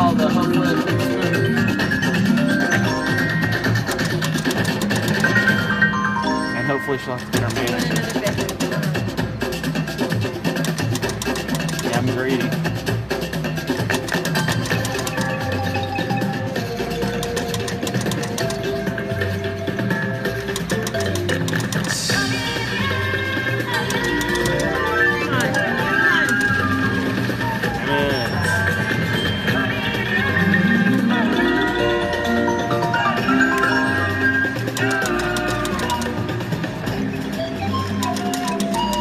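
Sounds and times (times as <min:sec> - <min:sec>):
slot machine chiming music: 0:00.0 - 0:09.0, 0:13.9 - 0:22.9, 0:23.7 - 0:39.0
slot machine reels spinning: 0:00.0 - 0:09.0, 0:09.7 - 0:12.5, 0:13.5 - 0:19.2, 0:19.8 - 0:22.8, 0:23.6 - 0:29.7, 0:30.4 - 0:39.0.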